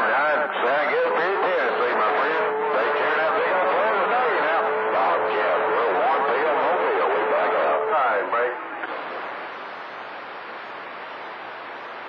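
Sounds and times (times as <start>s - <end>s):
garbled voices over radio: 0.0s - 9.3s.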